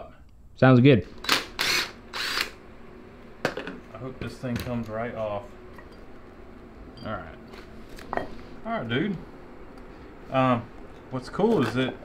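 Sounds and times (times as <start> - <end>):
power driver spinning: 1.1 - 2.6.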